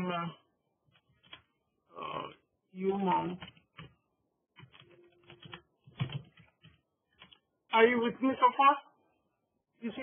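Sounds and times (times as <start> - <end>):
keyboard typing: 0.9 - 1.6, 3.1 - 7.6.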